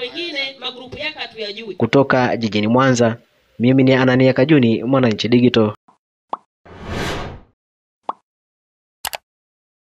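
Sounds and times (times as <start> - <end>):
whoosh: 6.7 - 7.5.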